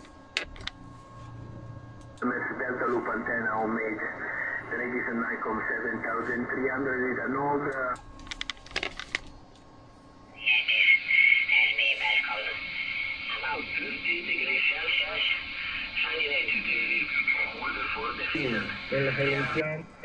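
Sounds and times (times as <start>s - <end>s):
faint radio voice: 2.2s - 7.9s, 10.4s - 19.8s
radio station hiss: 2.2s - 8.0s, 10.3s - 20.0s.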